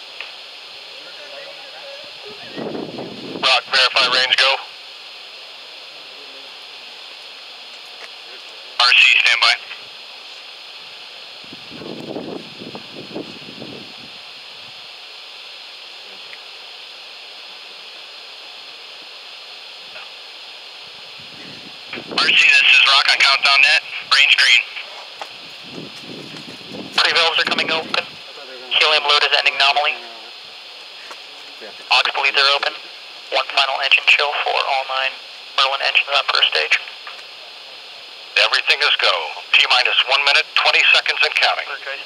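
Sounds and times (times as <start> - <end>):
steady background hiss: 0.0 - 42.0.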